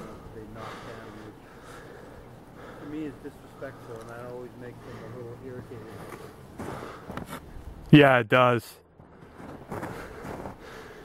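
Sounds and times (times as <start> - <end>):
quiet indistinct talking: 0.0 - 6.4
footsteps crunching in snow: 9.2 - 11.0.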